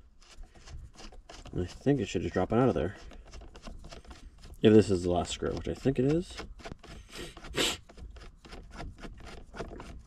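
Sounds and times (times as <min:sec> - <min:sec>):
screwdriver turning screw: 0:00.2 - 0:10.0.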